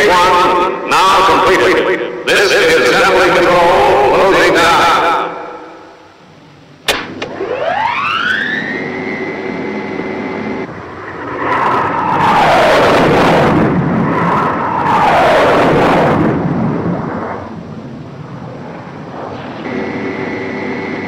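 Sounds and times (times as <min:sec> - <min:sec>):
high jet whine: 0:00.0 - 0:21.0
jet noise sweeping down: 0:00.0 - 0:21.0
low jet rumble: 0:05.3 - 0:21.0.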